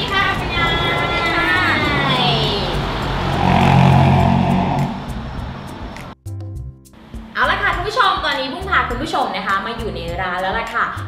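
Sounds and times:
vehicle engine passing by: 0.0 - 6.2.

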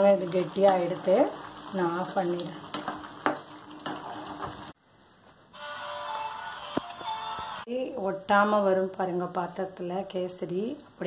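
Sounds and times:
food sizzling and bubbling: 0.0 - 5.2
background music: 5.6 - 7.7.

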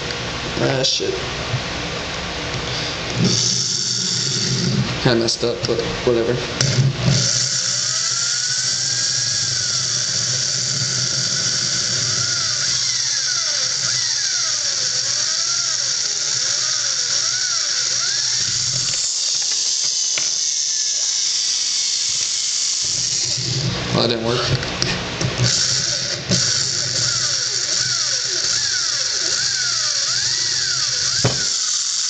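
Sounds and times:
electric drill boring through plastic: 3.1 - 5.0, 6.6 - 32.0
wavering squeal: 7.2 - 21.7, 25.5 - 32.0.

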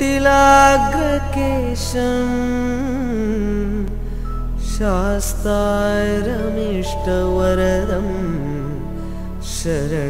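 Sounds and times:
man singing a long held note: 0.0 - 3.9
steady low drone: 0.0 - 10.0.

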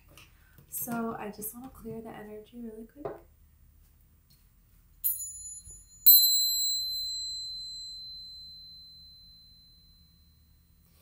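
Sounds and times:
tingsha cymbals ringing: 5.0 - 11.0.

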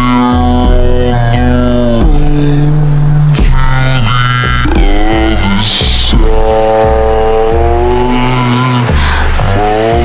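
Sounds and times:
heavy distorted bass notes: 0.0 - 10.0.

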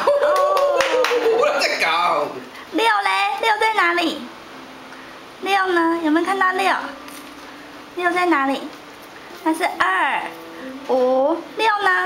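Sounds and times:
hands clapping: 0.0 - 1.4.

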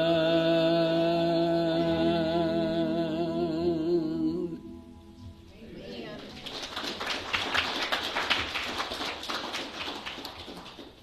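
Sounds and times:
audience applauding: 6.2 - 11.0.

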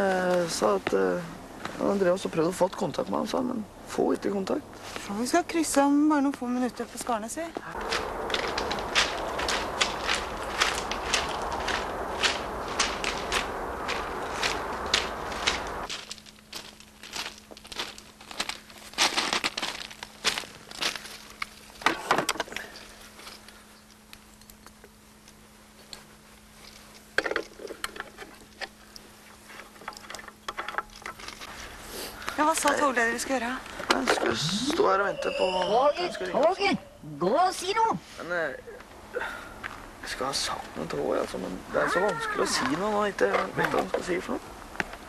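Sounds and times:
low steady hum: 0.0 - 37.8
footsteps: 7.6 - 21.3
steady low rumble: 7.6 - 21.6.

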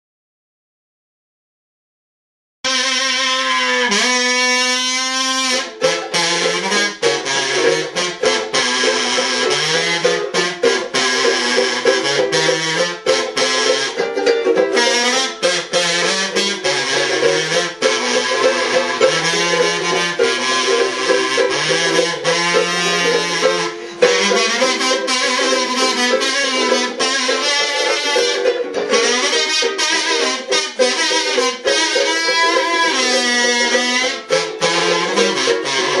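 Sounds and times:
kazoo buzzing melody: 2.6 - 36.0
ukulele strumming: 5.4 - 36.0.

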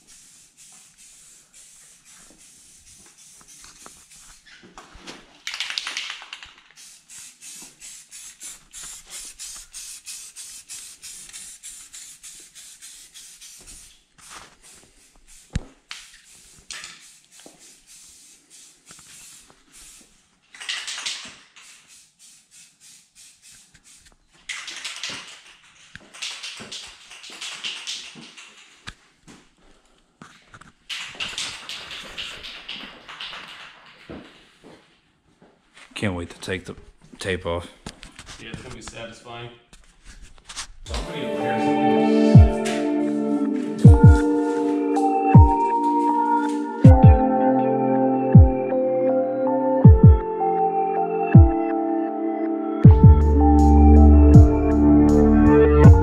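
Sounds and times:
spray paint hissing: 0.0 - 4.6, 5.5 - 28.9, 30.9 - 34.0, 40.9 - 46.8.

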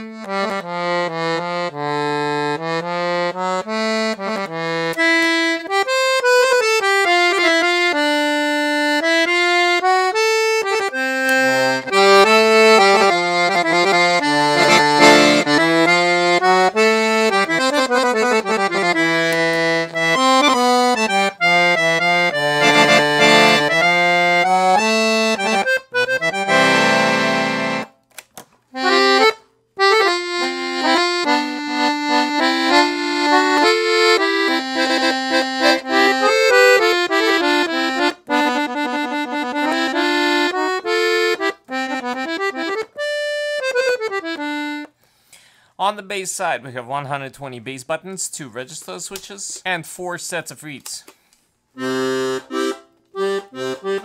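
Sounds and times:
piano accordion playing a tune: 0.0 - 28.0, 28.8 - 45.0, 51.8 - 54.0.

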